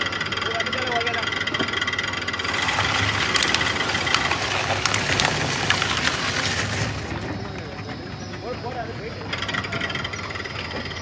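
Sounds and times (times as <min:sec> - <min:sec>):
shredder machine whine: 0:02.3 - 0:08.2
fabric crunching in shredder: 0:02.4 - 0:07.6.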